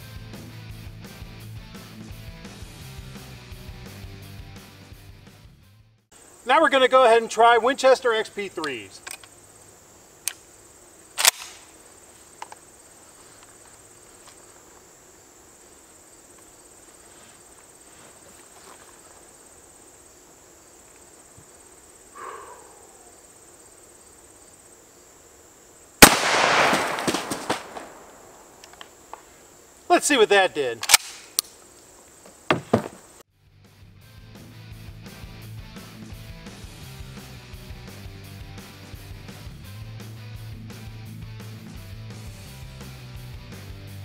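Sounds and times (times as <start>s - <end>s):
gun clicks: 8.6s - 9.4s, 10.2s - 10.4s, 11.2s - 11.7s, 12.4s - 12.6s, 26.0s - 29.2s, 30.8s - 31.6s
shotgun firing: 11.2s - 11.7s, 26.0s - 28.4s.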